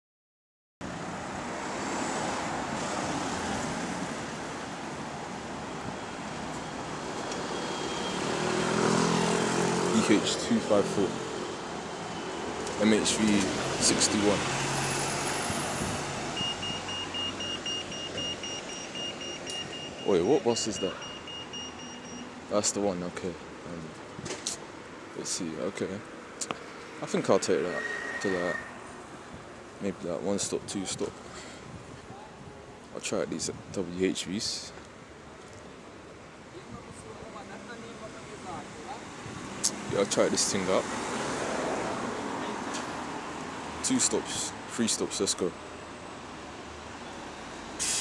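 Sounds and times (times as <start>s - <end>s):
street traffic noise: 0.8s - 48.0s
rapid high electronic beeping: 16.4s - 22.2s
sharp high hiss: 47.8s - 48.0s.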